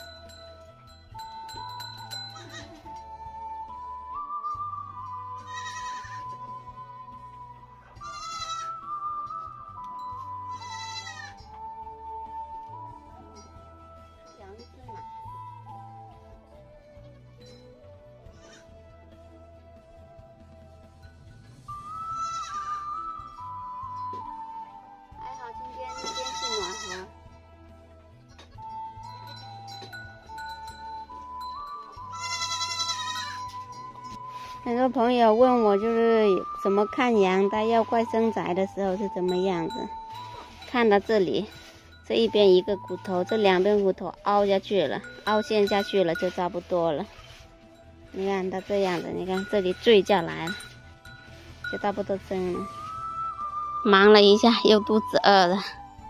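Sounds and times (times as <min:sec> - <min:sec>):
background music: 0:00.0 - 0:56.0
goat bleating: 0:02.3 - 0:02.8, 0:05.3 - 0:06.4, 0:08.0 - 0:08.8, 0:10.5 - 0:11.5, 0:18.3 - 0:18.7, 0:22.0 - 0:23.0, 0:25.8 - 0:27.1, 0:32.0 - 0:33.5.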